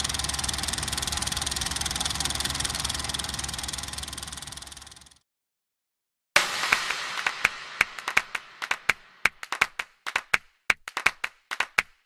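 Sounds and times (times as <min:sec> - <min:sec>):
crowd clapping: 0:06.4 - 0:12.0.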